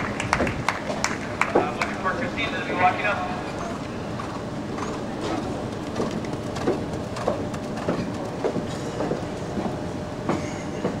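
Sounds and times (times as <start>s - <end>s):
outdoor background noise: 0.0s - 11.0s
horse hoofbeats on sand: 4.2s - 9.3s.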